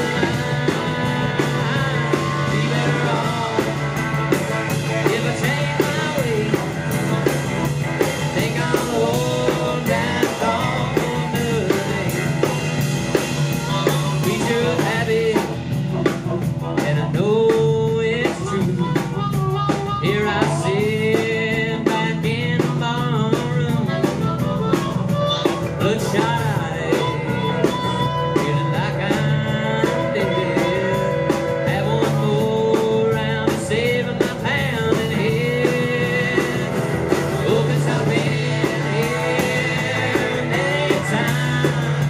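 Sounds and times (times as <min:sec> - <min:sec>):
acoustic guitar: 0:00.0 - 0:42.0
bass guitar: 0:00.0 - 0:42.0
drum kit beat: 0:00.0 - 0:42.0
electric guitars: 0:00.0 - 0:42.0
sliding melodic lead line: 0:00.0 - 0:42.0
fiddle: 0:18.2 - 0:42.0.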